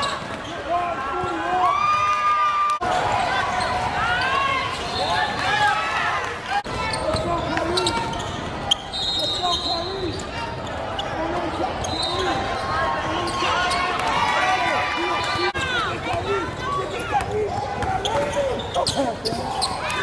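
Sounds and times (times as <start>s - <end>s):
sneakers squeaking: 0.0s - 1.6s, 6.7s - 14.5s, 15.3s - 20.0s
voices in echoing hall: 2.8s - 20.0s.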